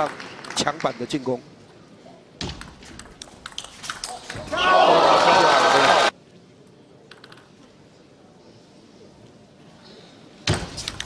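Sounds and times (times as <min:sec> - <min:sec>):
crowd cheering: 0:04.4 - 0:06.1.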